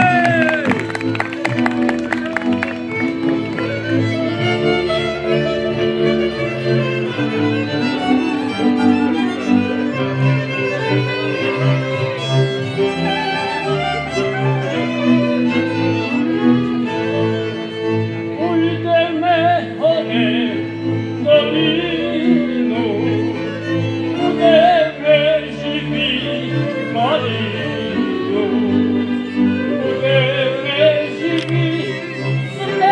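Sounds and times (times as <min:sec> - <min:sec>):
man singing: 0:00.0 - 0:00.9, 0:18.3 - 0:32.9
folk band with fiddles and clarinet: 0:00.0 - 0:32.9.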